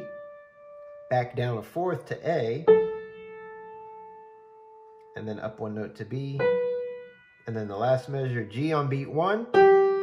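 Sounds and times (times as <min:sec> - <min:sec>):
piano note held: 0:06.3 - 0:08.4, 0:09.4 - 0:10.0.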